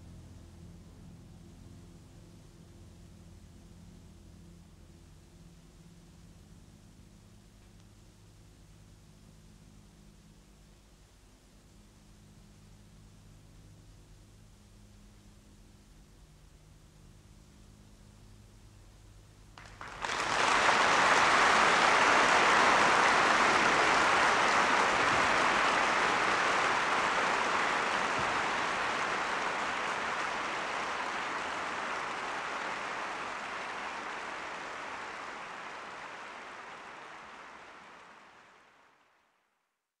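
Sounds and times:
audience applauding: 0:19.6 - 0:39.1.

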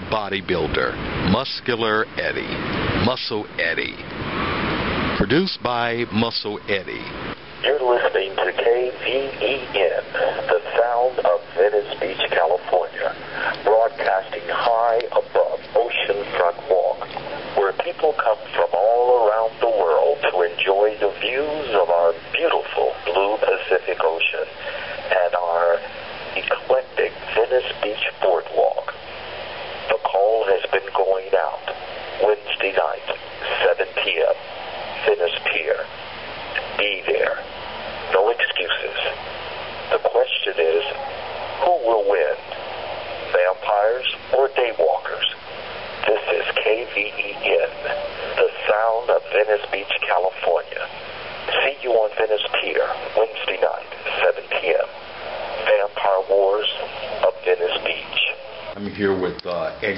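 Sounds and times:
tinny voice talking over speaker: 0:05.2 - 0:29.0, 0:38.1 - 0:39.2.

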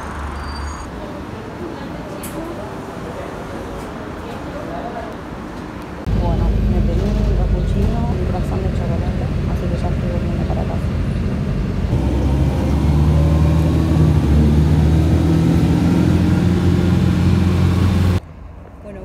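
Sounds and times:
quiet street sound: 0:00.0 - 0:19.0
bus engine rumble with whine: 0:06.0 - 0:18.2.

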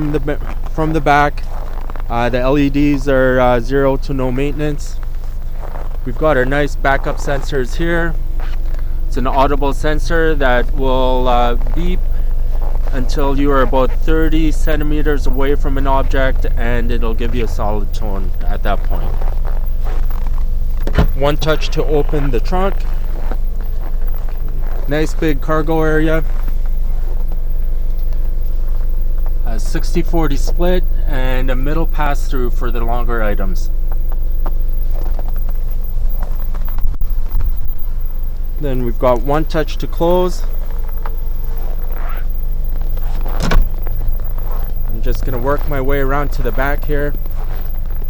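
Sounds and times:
power tailgate motor hum: 0:07.1 - 0:29.4, 0:40.0 - 0:46.8
tailgate thump: 0:20.8 - 0:21.2, 0:43.2 - 0:43.9
powered tailgate motor closing: 0:20.8 - 0:21.4, 0:43.2 - 0:43.9.

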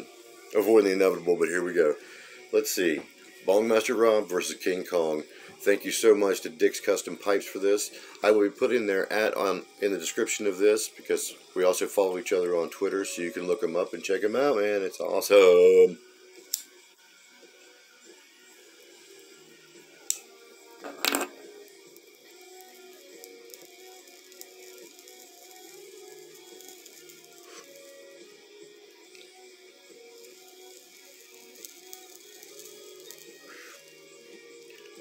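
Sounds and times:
faint background music: 0:00.0 - 0:35.0
lighter clicking: 0:16.4 - 0:16.8, 0:20.0 - 0:28.1, 0:30.2 - 0:35.0.

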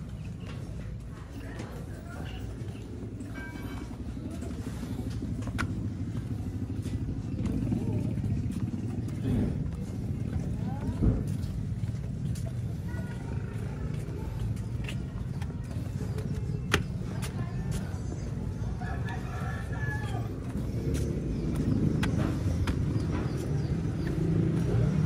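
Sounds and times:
indistinct voices: 0:00.0 - 0:25.0
steady low rumble: 0:00.0 - 0:25.0.

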